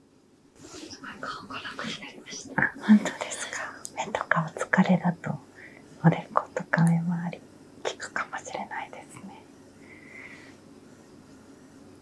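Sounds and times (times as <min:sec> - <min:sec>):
whispered conversation: 0:00.7 - 0:09.5.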